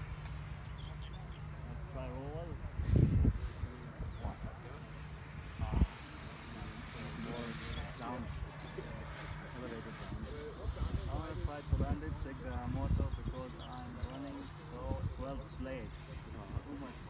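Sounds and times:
electric ducted fan whine: 0:00.0 - 0:17.0
wind rumble on microphone: 0:01.3 - 0:04.8, 0:05.4 - 0:17.0.

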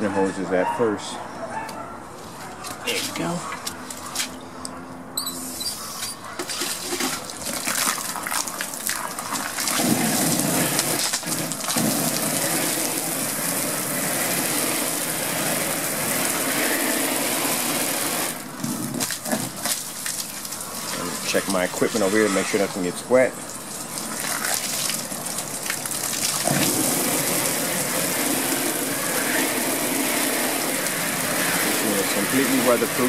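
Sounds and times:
garden hose spraying water: 0:06.4 - 0:33.0.

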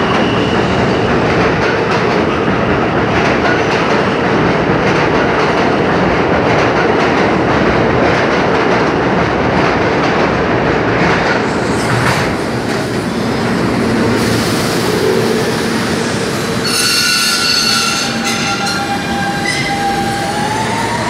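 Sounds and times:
subway trains rumbling: 0:00.0 - 0:21.0
high whining squealing tones: 0:15.4 - 0:21.0.

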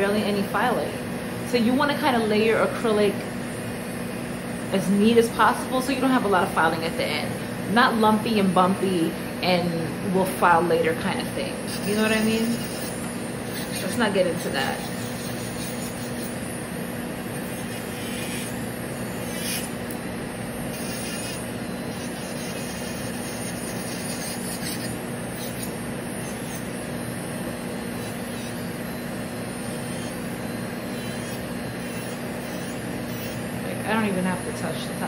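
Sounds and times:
electric nail drill filing: 0:00.0 - 0:35.0.

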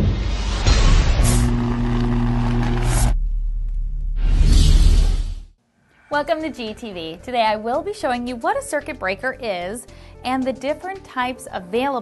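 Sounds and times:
low hum: 0:00.0 - 0:05.6
swoosh: 0:00.0 - 0:06.2.

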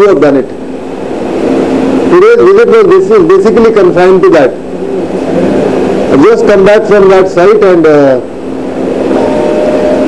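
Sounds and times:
faint hum: 0:00.0 - 0:10.0
man speaking: 0:06.1 - 0:08.3.

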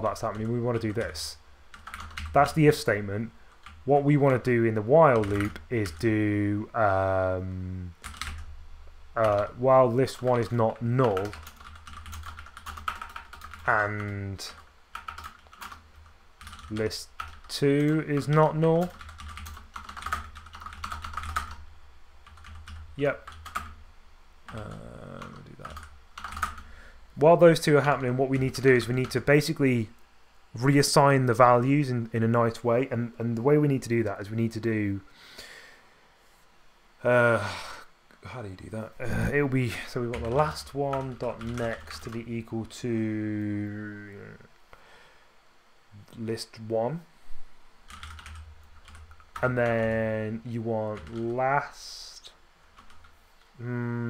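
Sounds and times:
computer keyboard typing: 0:00.0 - 0:02.6, 0:03.5 - 0:03.8, 0:05.1 - 0:06.2, 0:08.0 - 0:08.4, 0:09.2 - 0:21.6, 0:22.2 - 0:23.8, 0:24.5 - 0:26.7, 0:27.8 - 0:29.3, 0:40.1 - 0:42.2, 0:47.9 - 0:50.0, 0:50.9 - 0:51.3, 0:52.8 - 0:53.2.

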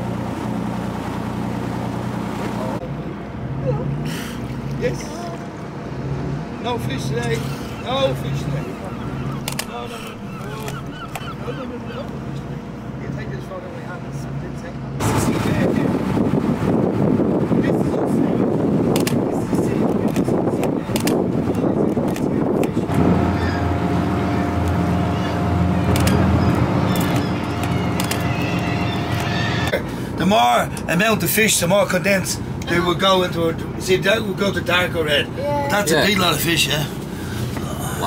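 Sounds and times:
boat engine droning: 0:00.0 - 0:38.0
churning water and wind: 0:00.0 - 0:38.0.

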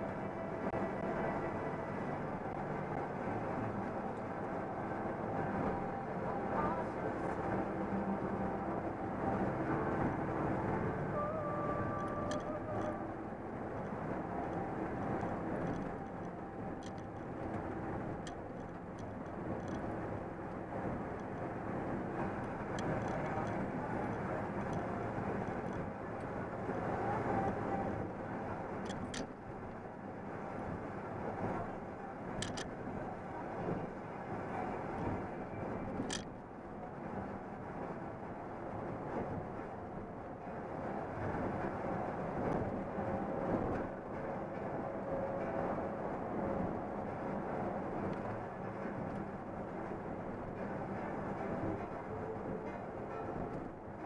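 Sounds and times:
truck engine and road noise: 0:00.0 - 0:54.0
light clicks and rattles: 0:13.8 - 0:19.9, 0:22.2 - 0:27.7, 0:28.8 - 0:29.4, 0:32.4 - 0:32.8, 0:35.9 - 0:36.4.

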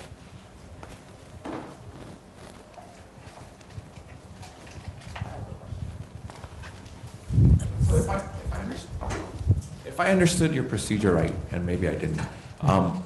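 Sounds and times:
faint knocks and rustles: 0:00.0 - 0:09.8.

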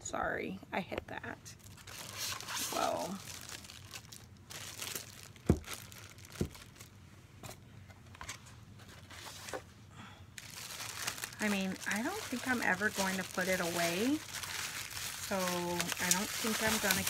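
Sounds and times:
styrofoam and box crinkling: 0:01.6 - 0:07.0, 0:10.4 - 0:17.0.

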